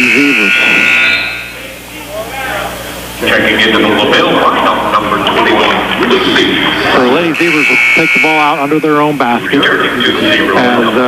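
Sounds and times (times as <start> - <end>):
scoreboard horn buzzing: 0.0 - 11.0.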